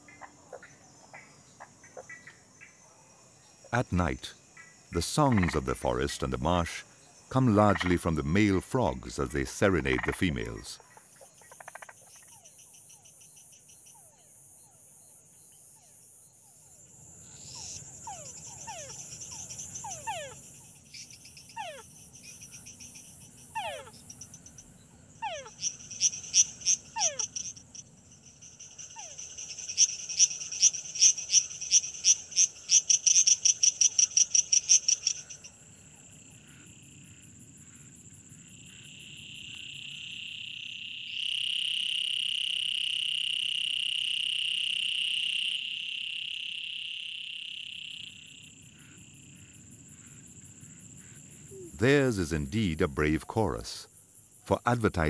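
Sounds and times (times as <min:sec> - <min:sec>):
insects trilling: 0:00.0 - 0:55.0
tree frogs calling: 0:00.0 - 0:55.0.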